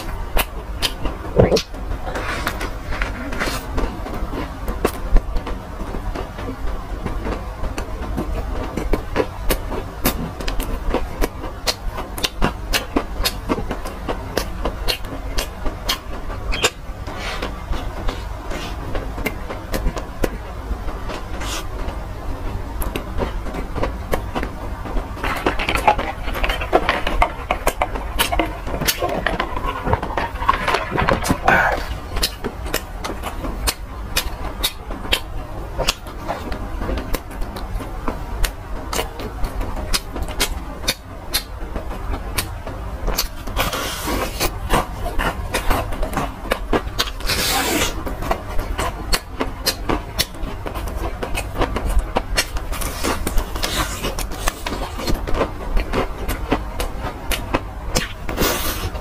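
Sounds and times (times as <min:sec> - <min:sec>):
steady low hum: 0:00.0 - 0:59.0
wet mouth clicks: 0:01.4 - 0:01.7
chewing with wet mouth sounds: 0:22.8 - 0:41.6, 0:42.4 - 0:59.0.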